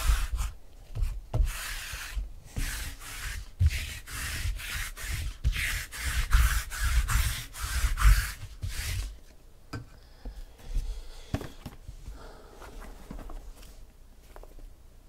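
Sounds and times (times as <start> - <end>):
lint roller rubbing on tabletop: 0.0 - 9.2.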